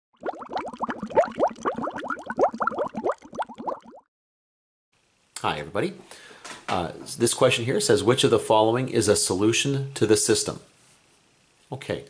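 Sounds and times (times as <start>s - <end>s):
water bubbling bloops: 0.2s - 4.1s.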